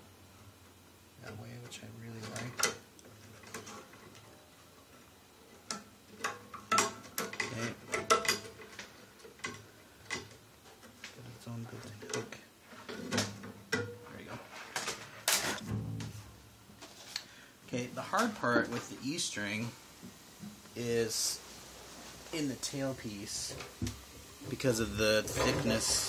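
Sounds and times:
bass strings clicking and clinking: 0:15.6 - 0:16.2.

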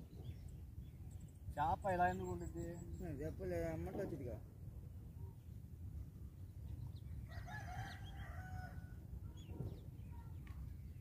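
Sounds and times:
rooster crowing: 0:07.3 - 0:09.0.

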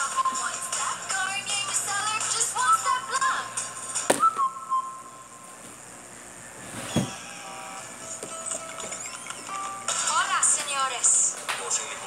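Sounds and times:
whistled commercial tune: 0:04.0 - 0:05.4.

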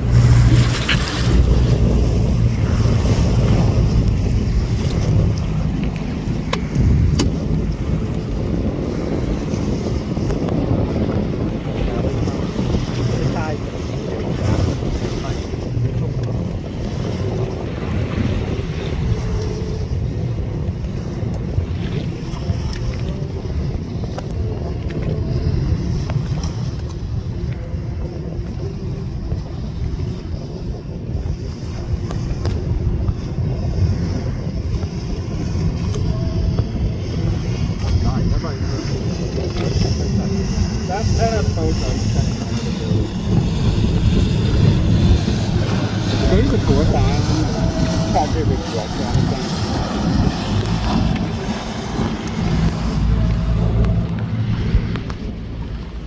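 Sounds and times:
waves washing: 0:00.0 - 0:56.0
wind buffeting microphone: 0:00.0 - 0:56.0.

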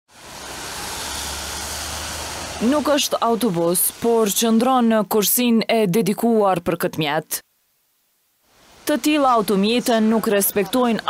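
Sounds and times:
vehicles hissing on wet road: 0:00.1 - 0:04.9, 0:08.5 - 0:11.0.

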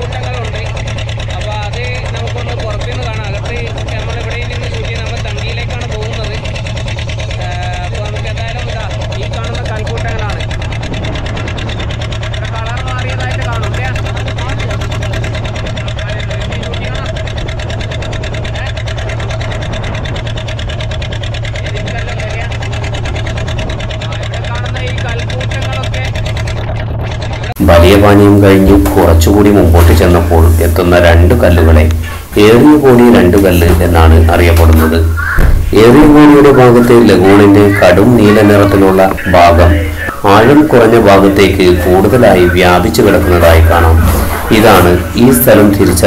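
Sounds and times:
people talking: 0:00.0 - 0:11.5, 0:12.2 - 0:17.5, 0:18.3 - 0:19.9, 0:21.5 - 0:46.0
boat engine running: 0:00.0 - 0:46.0.

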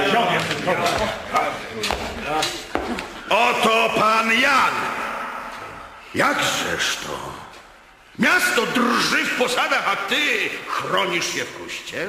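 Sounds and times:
fragments of voices: 0:00.0 - 0:12.0.

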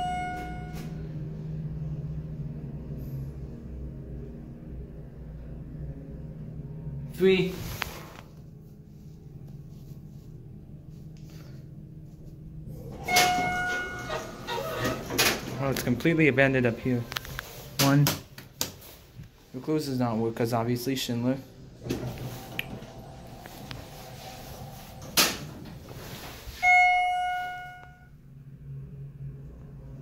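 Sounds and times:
elevator chime ding: 0:00.0 - 0:01.1, 0:12.9 - 0:14.9, 0:26.5 - 0:28.2
elevator arrival chime: 0:00.0 - 0:01.2, 0:12.8 - 0:15.6, 0:21.9 - 0:28.2
elevator doors sliding open: 0:12.7 - 0:18.0, 0:21.6 - 0:28.0.

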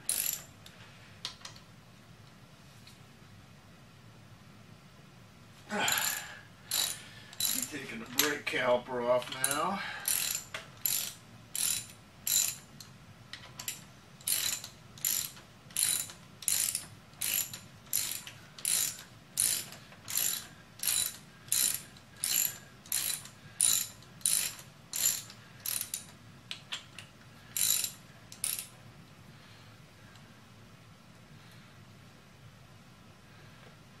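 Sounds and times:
ratchet wrench clicking: 0:00.1 - 0:00.5, 0:06.0 - 0:08.4, 0:09.2 - 0:26.6, 0:27.5 - 0:28.7.

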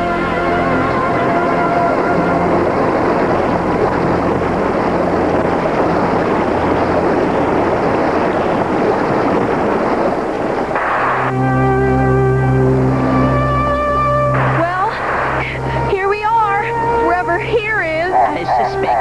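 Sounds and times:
faint music notes: 0:00.0 - 0:07.7, 0:10.8 - 0:19.0
river water rushing: 0:00.0 - 0:11.6, 0:12.5 - 0:19.0.

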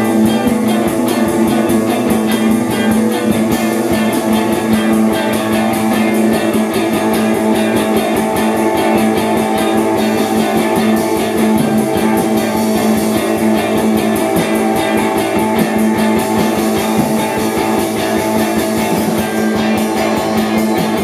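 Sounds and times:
drum kit cymbal beat: 0:00.0 - 0:21.0
electric guitar: 0:00.0 - 0:21.0
live rock band playing: 0:00.0 - 0:21.0.

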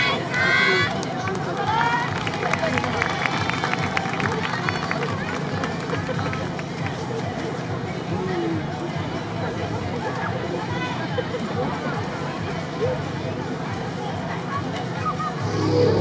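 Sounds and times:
crowd noise: 0:00.0 - 0:16.0
voices calling out: 0:15.0 - 0:16.0.

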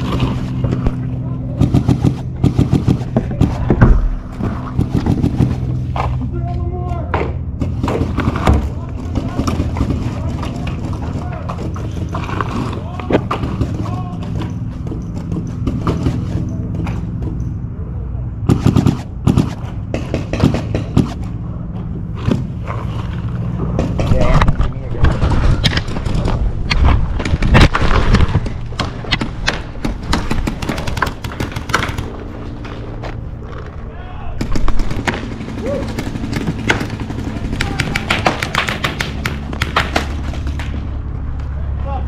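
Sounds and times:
paintball markers firing: 0:01.6 - 0:05.8, 0:34.4 - 0:40.8
players shouting: 0:08.6 - 0:14.8, 0:33.8 - 0:34.5, 0:37.2 - 0:39.2.

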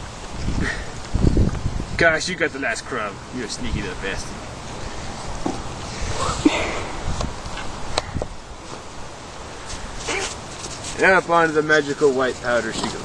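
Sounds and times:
sharp clicks and rustles: 0:09.6 - 0:13.0.

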